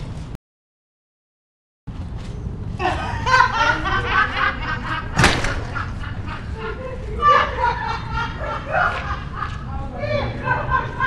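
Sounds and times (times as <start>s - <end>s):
low outdoor background noise: 1.9s - 11.0s.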